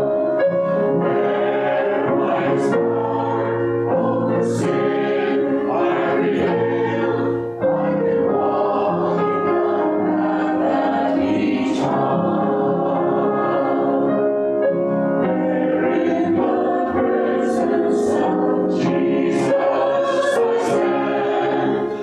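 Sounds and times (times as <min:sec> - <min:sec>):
church choir singing: 0:00.0 - 0:22.0.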